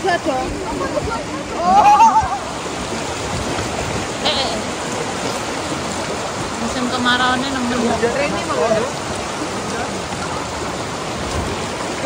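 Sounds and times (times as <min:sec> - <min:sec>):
river rushing over stones: 0:00.0 - 0:12.0.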